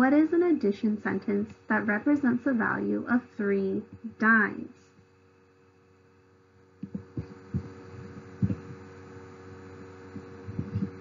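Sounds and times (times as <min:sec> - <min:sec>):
faint steady hum: 0:00.0 - 0:11.0
dull low thumps: 0:06.8 - 0:08.9, 0:10.2 - 0:11.0.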